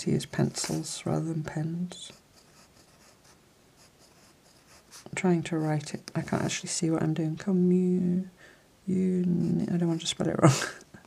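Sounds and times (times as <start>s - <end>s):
pencil scratching on paper: 2.0s - 6.6s.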